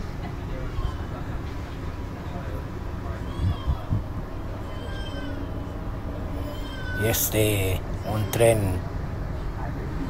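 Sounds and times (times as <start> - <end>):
train carriage rumble: 0.0 - 10.0.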